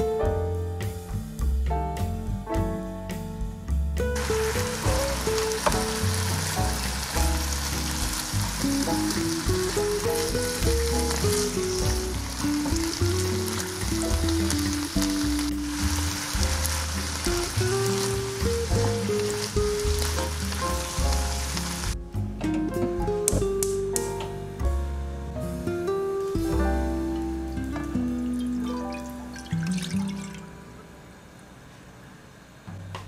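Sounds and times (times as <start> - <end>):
food sizzling in a frying pan: 4.2 - 22.0.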